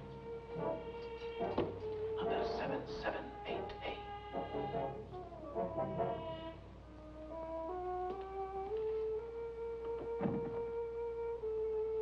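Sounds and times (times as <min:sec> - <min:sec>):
dramatic music score: 0:00.0 - 0:12.0.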